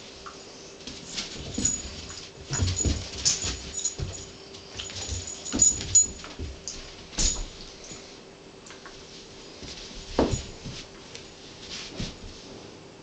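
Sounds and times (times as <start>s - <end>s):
animals scuffling on carpet: 0.0s - 8.2s, 8.9s - 12.8s.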